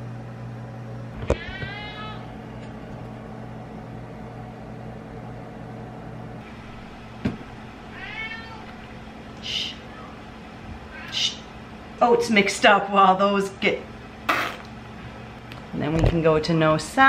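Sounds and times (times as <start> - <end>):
cat meowing: 1.3 - 2.3, 7.9 - 8.9, 10.9 - 11.5.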